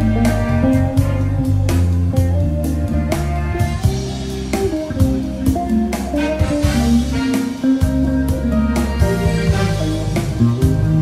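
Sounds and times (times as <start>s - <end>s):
backing track drums and bass: 0.0s - 11.0s
electric guitar lead: 0.0s - 11.0s.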